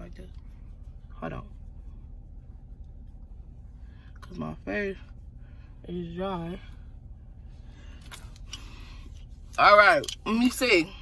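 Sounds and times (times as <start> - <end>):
faint brushing and handling: 0.0 - 10.9.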